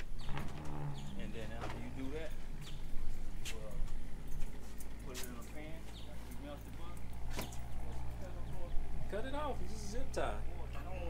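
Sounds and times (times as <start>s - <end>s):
men talking: 0.2s - 11.0s.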